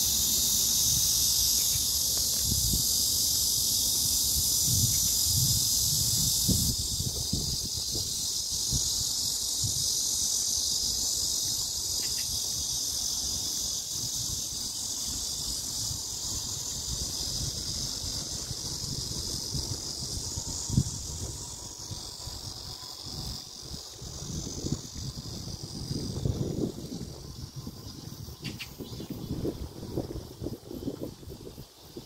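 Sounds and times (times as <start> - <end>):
insects chirping in grass: 0.0 - 32.0
wind buffeting microphone: 0.3 - 32.0.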